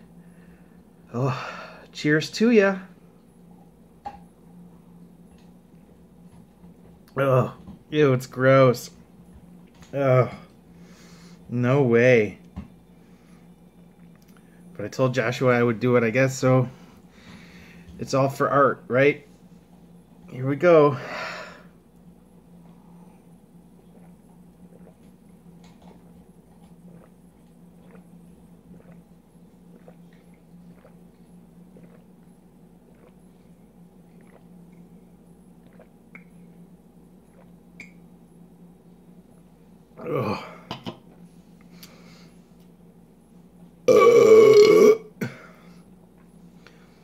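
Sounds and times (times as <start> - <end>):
low hum: 0.0 - 47.0
person gulping beer: 23.8 - 35.0, 35.6 - 36.6, 37.2 - 37.7, 43.9 - 45.6
man burping loudly: 40.0 - 40.7, 43.9 - 45.4.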